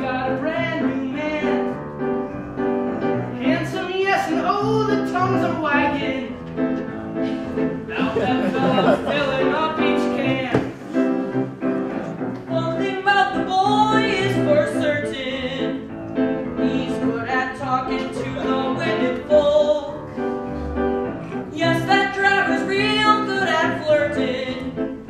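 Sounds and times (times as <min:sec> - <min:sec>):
double bass: 0:00.0 - 0:25.0
instrumental accompaniment: 0:00.0 - 0:25.0
person singing: 0:16.6 - 0:20.0.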